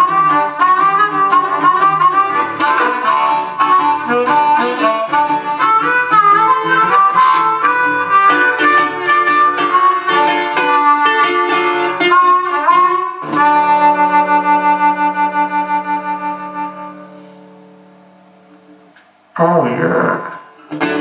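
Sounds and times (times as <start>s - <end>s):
blues harmonica playing: 0.0s - 18.2s, 20.5s - 21.0s
resonator guitar picking: 0.0s - 19.3s, 20.2s - 21.0s.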